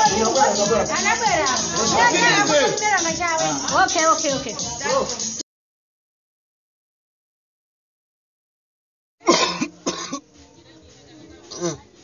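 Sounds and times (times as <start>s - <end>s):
man coughing: 9.2s - 10.2s.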